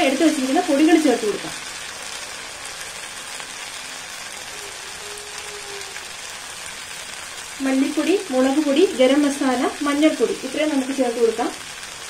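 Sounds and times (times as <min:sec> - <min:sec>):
masala sizzling in a hot pan: 0:00.0 - 0:12.0.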